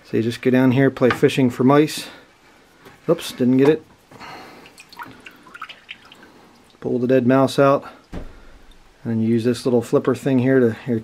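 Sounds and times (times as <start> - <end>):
water dripping into plastic bucket: 4.6 - 6.9.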